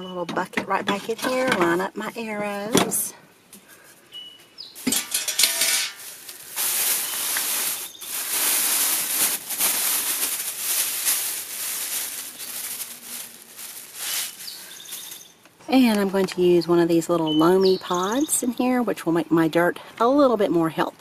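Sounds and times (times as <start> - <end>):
food scraps tumbling into bucket: 4.8 - 15.3
plastic bag crinkling: 4.8 - 15.4.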